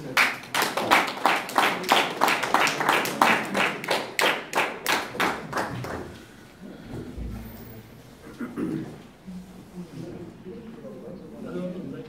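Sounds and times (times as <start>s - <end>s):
audience applauding: 0.0s - 6.3s.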